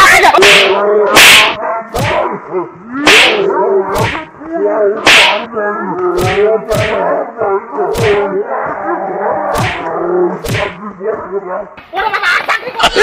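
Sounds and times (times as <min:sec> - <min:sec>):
whip-crack sound effects: 0:00.4 - 0:02.3, 0:03.0 - 0:04.3, 0:05.0 - 0:05.5, 0:06.1 - 0:07.1, 0:07.9 - 0:08.3, 0:09.5 - 0:10.8.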